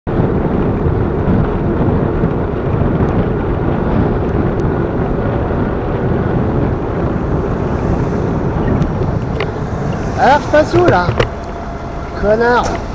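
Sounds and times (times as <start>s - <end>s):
road and traffic rumble: 0.1s - 12.9s
wind buffeting microphone: 0.1s - 12.9s.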